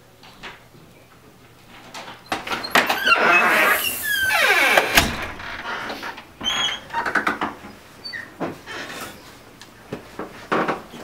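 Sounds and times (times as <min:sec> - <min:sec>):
door scraping and squeaking: 0:02.2 - 0:07.4
door latch clicking: 0:04.6 - 0:05.7
door knocks: 0:04.8 - 0:05.7.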